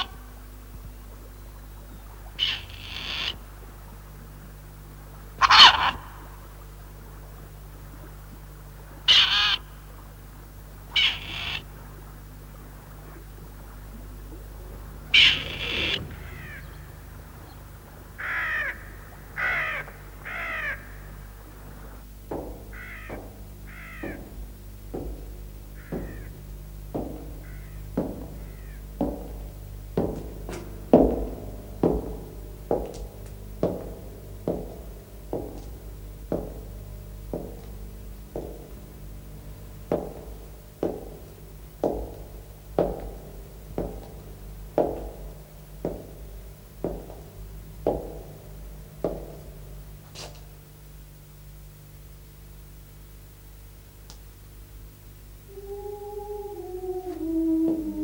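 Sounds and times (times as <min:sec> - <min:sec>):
crows cawing: 0:02.4 - 0:03.4, 0:05.4 - 0:06.4, 0:09.1 - 0:09.7, 0:10.9 - 0:11.7, 0:15.1 - 0:36.7, 0:55.5 - 0:58.0
footsteps on stone floor echoing: 0:14.8 - 0:50.6.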